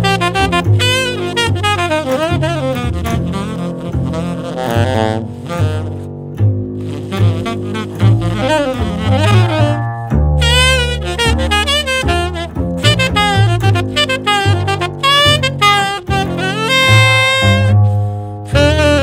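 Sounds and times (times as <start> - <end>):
plucked double bass line: 0.0 - 19.0
tenor saxophone improvising: 0.0 - 19.0.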